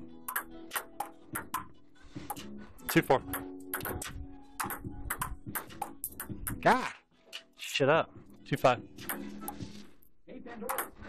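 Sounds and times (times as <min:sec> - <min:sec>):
ping-pong ball hitting table and paddles: 0:00.2 - 0:07.5, 0:09.0 - 0:09.9, 0:10.6 - 0:11.0.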